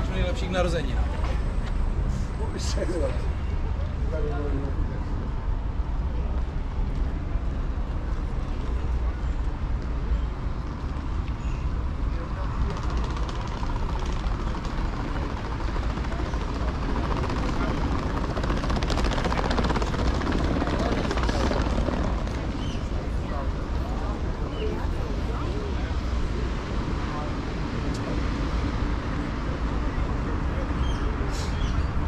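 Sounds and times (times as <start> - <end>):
voices of people nearby: 0.0 - 32.0
wind buffeting microphone: 5.2 - 32.0.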